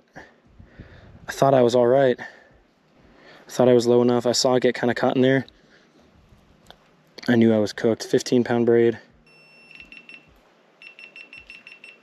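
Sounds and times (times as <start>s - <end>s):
camera warning beeps: 9.2s - 12.0s.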